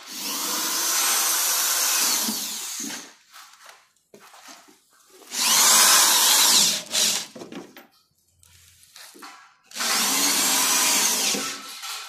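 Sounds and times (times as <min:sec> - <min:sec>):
cordless drill driving screw: 0:05.3 - 0:07.3, 0:09.7 - 0:12.0.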